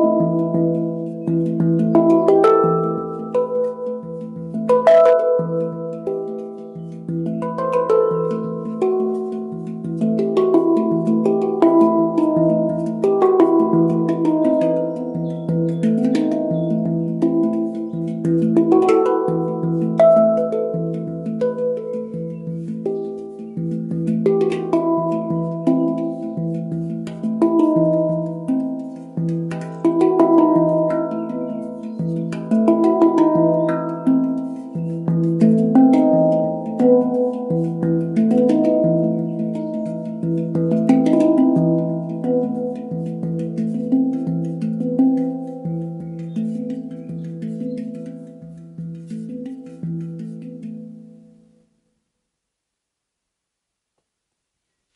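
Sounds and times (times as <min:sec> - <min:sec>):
handpan notes: 0:00.0 - 0:51.9.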